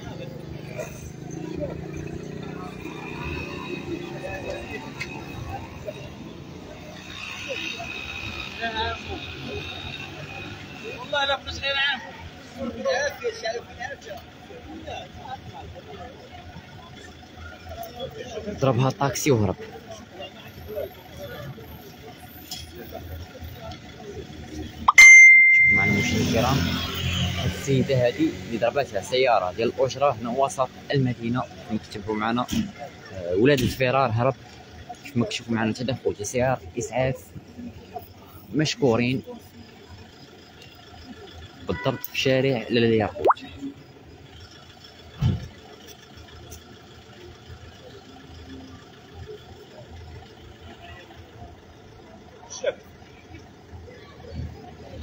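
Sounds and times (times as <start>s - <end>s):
vehicle engine idling: 0.0s - 55.0s
bright bell-like ding: 24.9s - 26.3s.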